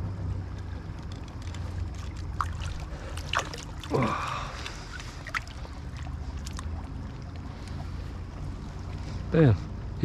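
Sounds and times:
river water rippling over rocks: 0:00.6 - 0:09.3.

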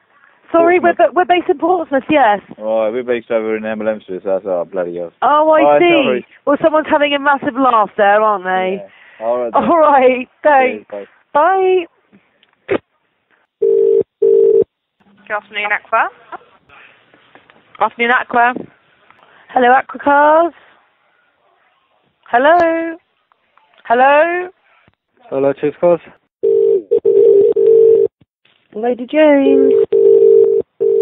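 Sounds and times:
telephone ringing tone: 0:13.6 - 0:14.6, 0:26.4 - 0:28.1, 0:29.5 - 0:31.0.

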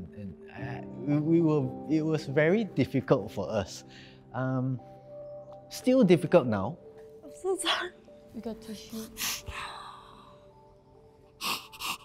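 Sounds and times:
woman sniffling while crying: 0:11.4 - 0:12.0.

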